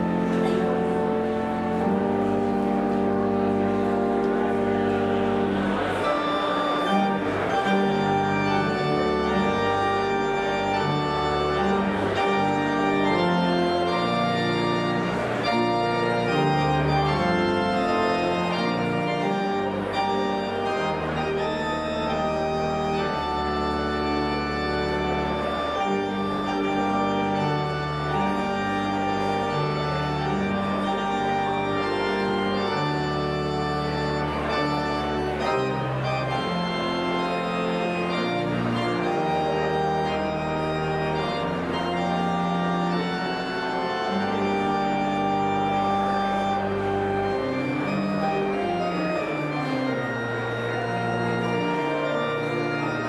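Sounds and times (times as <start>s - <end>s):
church organ playing chords: 0.0s - 53.0s.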